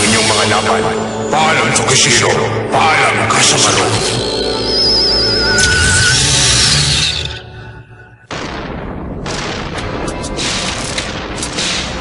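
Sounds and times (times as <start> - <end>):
dramatic music: 0.0 - 12.0
energy blast with crackling: 8.3 - 12.0.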